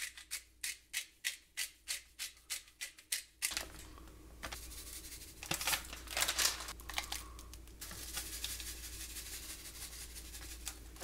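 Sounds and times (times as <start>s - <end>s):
plastic bag rustling: 5.4s - 9.4s.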